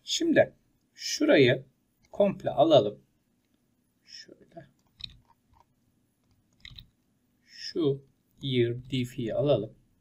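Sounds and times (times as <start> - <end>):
faint clicks and smacks: 2.0 - 2.2, 3.4 - 3.7, 4.6 - 7.1.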